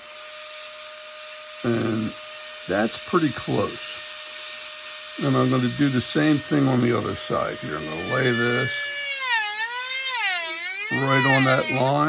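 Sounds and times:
rotary carving tool whining: 0:00.0 - 0:12.0.

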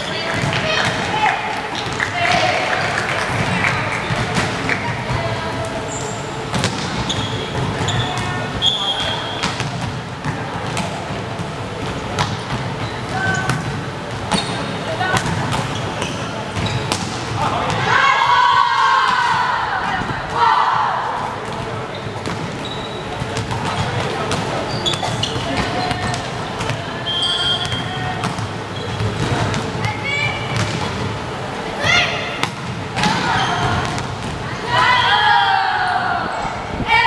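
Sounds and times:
sneakers squeaking: 0:00.0 - 0:20.1, 0:21.2 - 0:35.3
players shouting: 0:17.4 - 0:21.4, 0:31.6 - 0:37.0.

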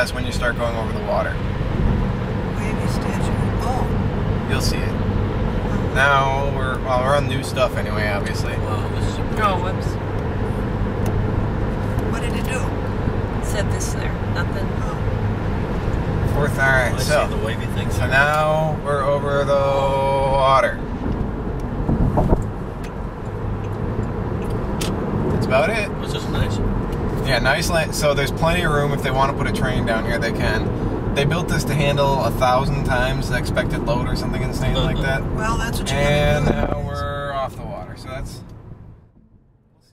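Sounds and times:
car road and engine rumble: 0:00.0 - 0:39.9.

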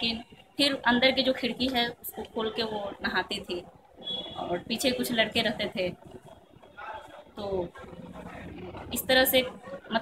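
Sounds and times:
woman speaking: 0:00.0 - 0:03.8, 0:04.4 - 0:06.2, 0:07.4 - 0:08.0, 0:08.8 - 0:10.0.

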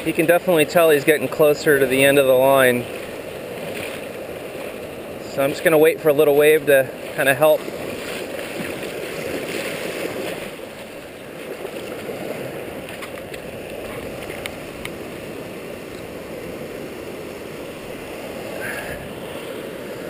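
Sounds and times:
surf washing over sand: 0:00.0 - 0:20.0.

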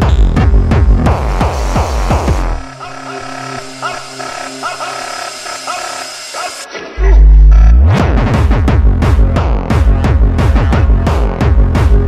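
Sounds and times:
electronic dance beat: 0:00.0 - 0:12.0
held synth tones: 0:01.1 - 0:07.7.

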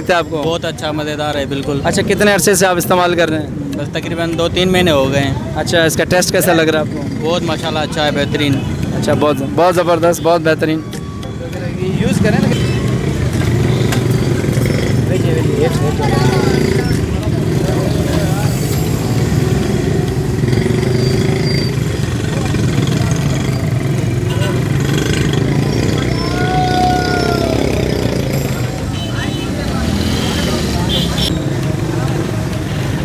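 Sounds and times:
chatter of many people: 0:00.0 - 0:33.0
motorcycle engines running: 0:00.0 - 0:33.0.

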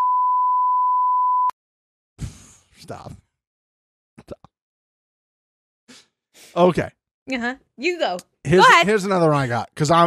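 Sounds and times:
censor bleep tone: 0:00.0 - 0:01.6.

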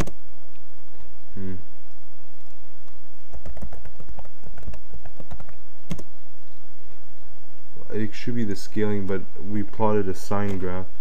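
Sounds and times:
typing on computer keyboard: 0:03.3 - 0:06.1.

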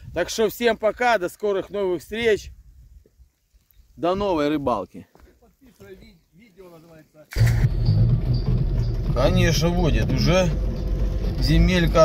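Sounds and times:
road rumble on dirt track: 0:07.3 - 0:12.0
car engine hum inside cabin: 0:07.4 - 0:12.0.

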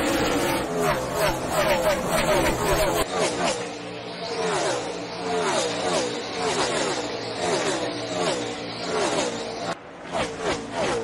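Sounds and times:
race car engines passing: 0:00.0 - 0:11.0.

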